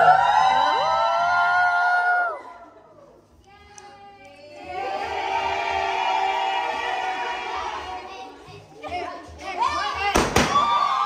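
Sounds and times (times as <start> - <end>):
women cheering: 0.0 - 2.8, 10.4 - 11.0.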